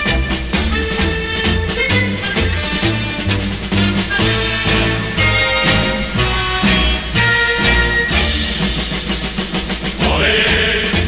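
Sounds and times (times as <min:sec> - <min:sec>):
orchestral march: 0:00.0 - 0:11.0.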